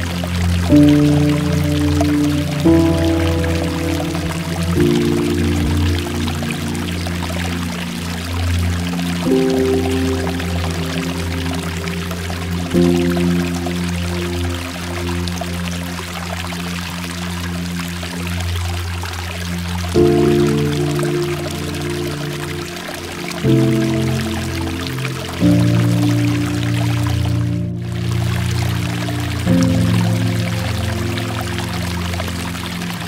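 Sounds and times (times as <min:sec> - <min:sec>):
soft ambient music chords: 0:00.0 - 0:33.0
water pouring down rock: 0:00.0 - 0:33.0.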